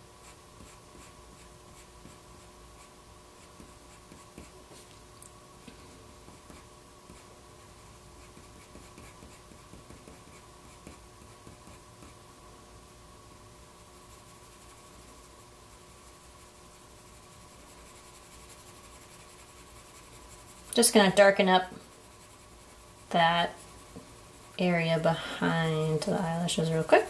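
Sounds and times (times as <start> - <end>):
faint steady hum: 0.0 - 27.0
pencil scratching on paper: 0.2 - 4.6, 6.3 - 7.3, 8.2 - 12.2, 14.1 - 27.0.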